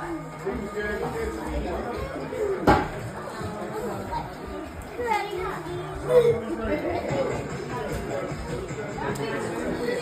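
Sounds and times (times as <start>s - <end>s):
chatter in room: 0.0s - 10.0s
children's voices at play: 3.3s - 7.2s, 9.2s - 10.0s.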